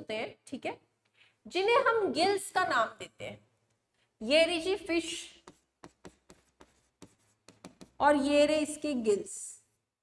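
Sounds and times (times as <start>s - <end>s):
stylus tapping on a screen: 5.4s - 8.0s.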